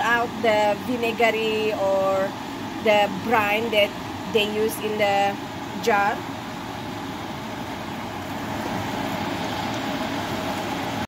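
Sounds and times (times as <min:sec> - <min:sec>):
faint constant hum: 0:00.0 - 0:11.0
steady whooshing noise: 0:05.4 - 0:11.0.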